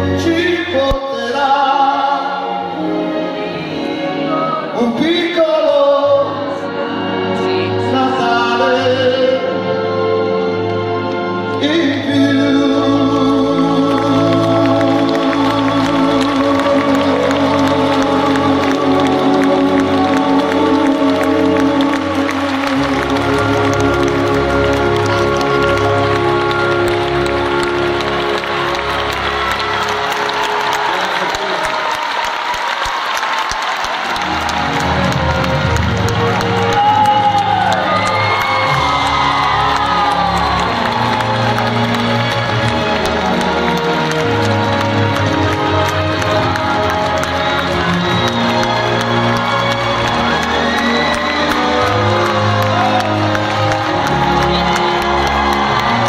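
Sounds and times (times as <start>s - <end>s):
live concert music: 0.0s - 56.0s
audience applauding and cheering: 9.9s - 56.0s.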